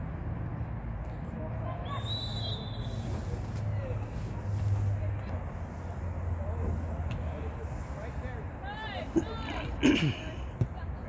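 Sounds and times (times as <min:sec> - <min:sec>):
referee's whistle: 0:01.9 - 0:03.0.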